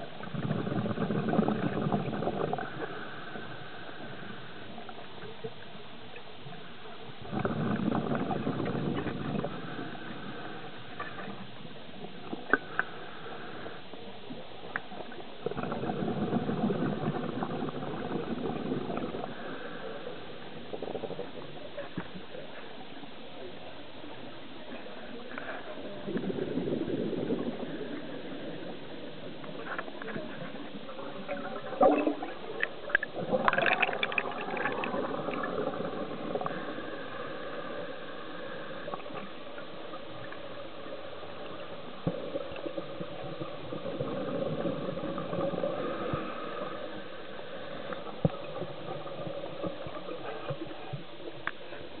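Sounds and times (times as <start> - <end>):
steady underwater hiss: 0.0 - 52.0
underwater bubbles gurgling: 0.0 - 52.0.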